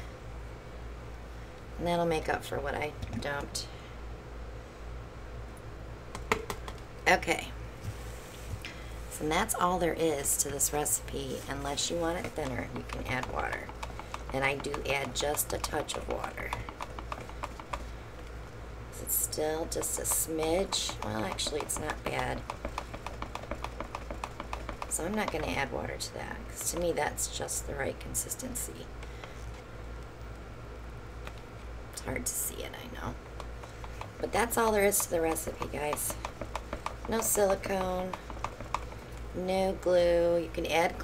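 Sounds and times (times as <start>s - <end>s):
low room hum: 0.0s - 41.0s
stir stick tapping plastic tub: 11.4s - 17.9s, 19.6s - 25.8s, 26.5s - 27.0s, 33.3s - 39.2s.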